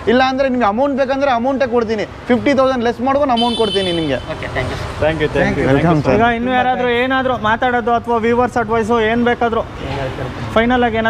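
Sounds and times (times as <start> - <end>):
men talking: 0.0 - 11.0
street traffic rumble: 0.0 - 11.0.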